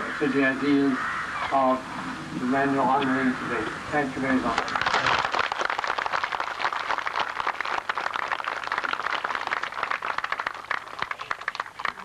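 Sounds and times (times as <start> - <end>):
crowd applauding: 4.5 - 12.0.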